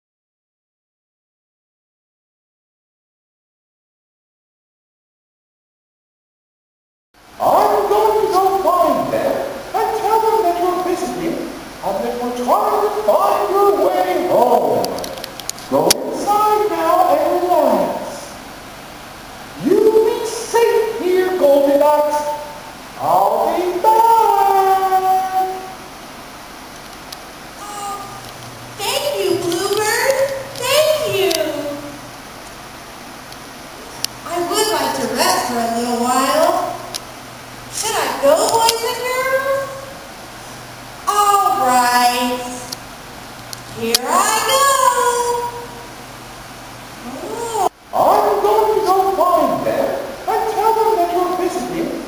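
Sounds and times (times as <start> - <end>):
high-pitched voice calling: 19.6 - 25.9, 27.6 - 32.1, 37.7 - 40.0, 41.1 - 42.7, 43.8 - 45.9, 47.0 - 51.8
woman's drawn-out wordless vocal: 27.6 - 32.0, 47.0 - 47.8.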